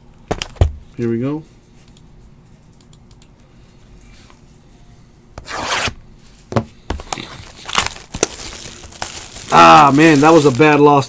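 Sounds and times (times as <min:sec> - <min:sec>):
plastic rubbing against cardboard: 0:05.4 - 0:06.0
shrink wrap ripping: 0:07.2 - 0:11.0.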